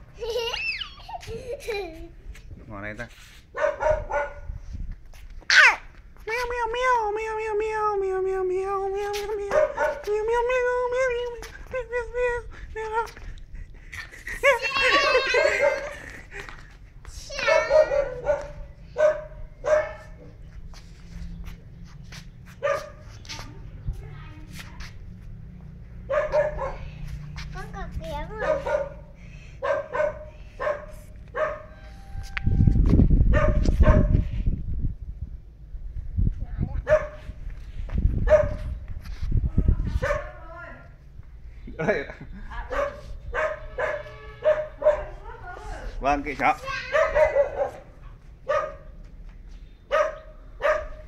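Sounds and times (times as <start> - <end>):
dog yipping and barking: 3.5 - 4.5, 5.5 - 5.9, 9.5 - 10.1, 14.7 - 15.9, 17.3 - 20.3, 22.6 - 23.1, 26.1 - 26.8, 28.4 - 29.0, 29.6 - 31.8, 33.3 - 34.2, 36.8 - 37.2, 38.3 - 38.7, 40.0 - 40.4, 42.7 - 45.2, 46.8 - 48.9, 49.9 - 51.0.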